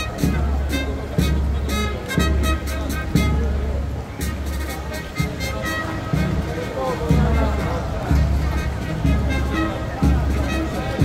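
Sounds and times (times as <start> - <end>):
band playing slow march: 0.0 - 11.0
crowd voices: 0.0 - 11.0
deep drum beat: 0.0 - 11.0.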